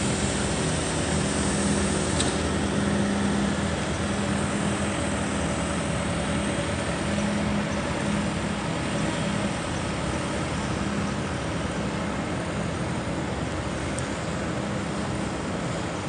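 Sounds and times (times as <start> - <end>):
city traffic noise: 0.0 - 16.0
engine idling hum: 0.0 - 16.0.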